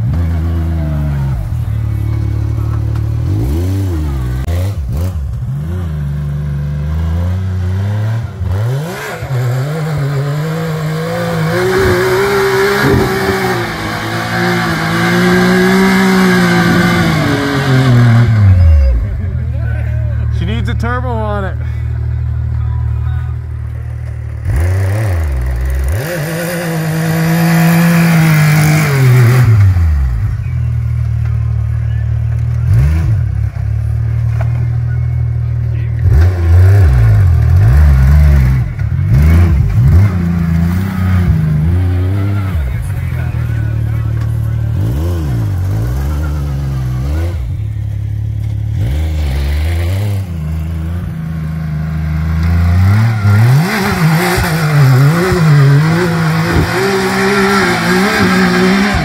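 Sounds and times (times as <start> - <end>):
engine revving: 0.0 - 22.6, 23.7 - 59.0.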